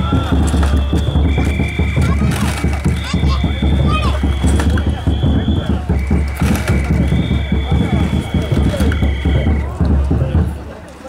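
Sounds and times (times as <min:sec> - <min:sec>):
big drum beaten fast: 0:00.0 - 0:10.7
voices calling: 0:00.0 - 0:11.0.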